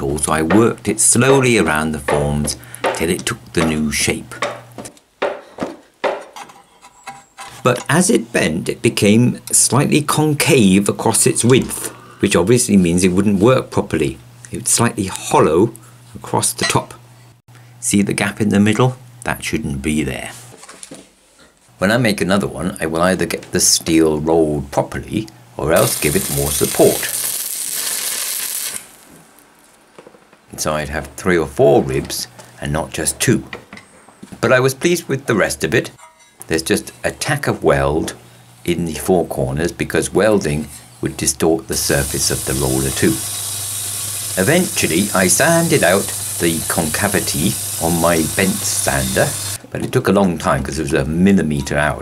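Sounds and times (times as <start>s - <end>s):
steel strip knocking on wood: 0.4s - 3.8s, 4.4s - 7.2s
welding arc hissing: 25.8s - 29.2s, 41.7s - 49.6s.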